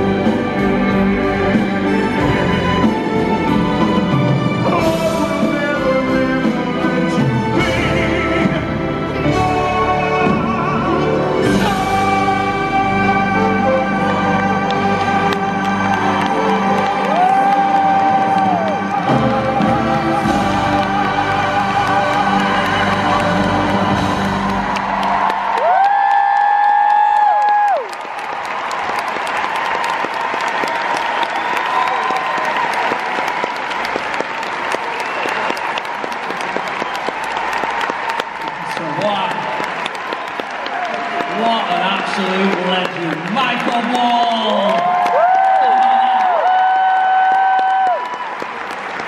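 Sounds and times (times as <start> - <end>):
orchestra playing: 0.0 - 25.6
crowd applauding and cheering: 0.0 - 49.0
man singing long note: 4.7 - 23.7.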